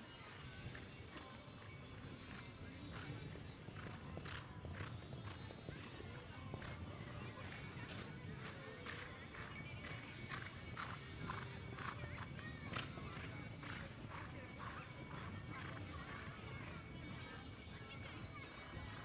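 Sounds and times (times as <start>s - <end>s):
background music: 0.0s - 19.0s
horse hoofbeats cantering: 0.2s - 19.0s.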